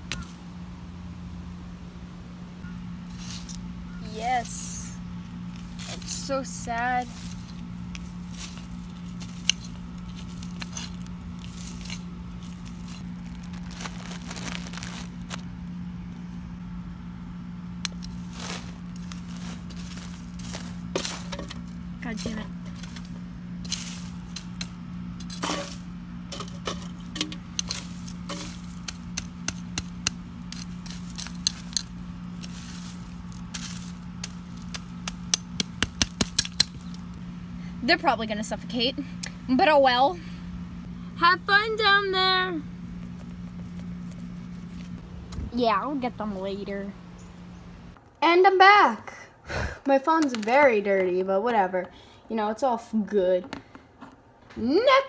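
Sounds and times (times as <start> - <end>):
steady low hum: 0.0 - 55.0
digging tool scraping soil and leaves: 3.0 - 15.5, 17.9 - 37.1, 43.0 - 45.0.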